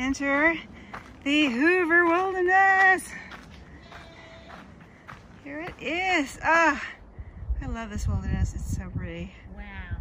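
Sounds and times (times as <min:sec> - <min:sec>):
footsteps on dirt trail: 0:00.0 - 0:07.0.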